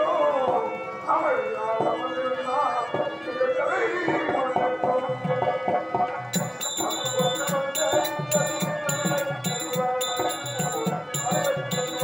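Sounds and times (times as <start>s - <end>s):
harmonium sustained notes: 0.0s - 12.0s
hand cymbals ringing: 6.3s - 12.0s
hand drum beat: 6.4s - 12.0s.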